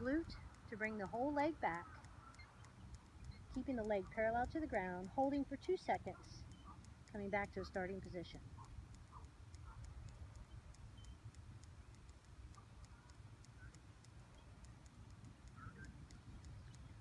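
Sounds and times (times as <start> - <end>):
faint high ticking: 0.0 - 17.0
faint chirps: 0.3 - 4.1, 6.1 - 17.0.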